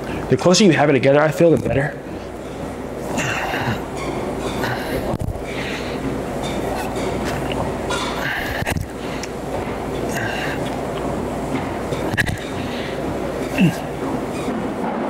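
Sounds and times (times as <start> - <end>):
low room hum: 0.0 - 15.0
man breathing out hard: 8.2 - 9.3.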